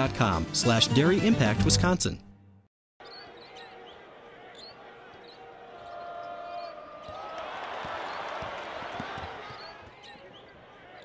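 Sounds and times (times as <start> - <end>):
arena crowd noise: 3.0 - 11.0.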